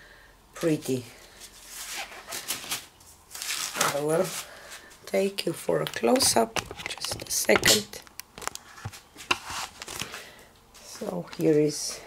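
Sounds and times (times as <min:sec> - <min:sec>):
phone handling clicks and rustles: 0:05.8 - 0:10.1.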